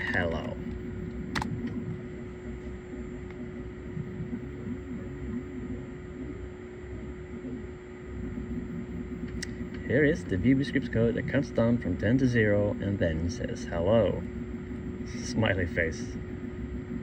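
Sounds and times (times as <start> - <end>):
electrical hum: 0.0 - 17.0
low room rumble: 0.0 - 17.0
sharp click: 0.7 - 1.8.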